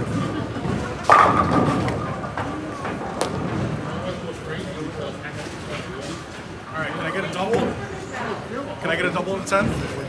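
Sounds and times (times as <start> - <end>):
bowling pins crashing: 0.1 - 3.9.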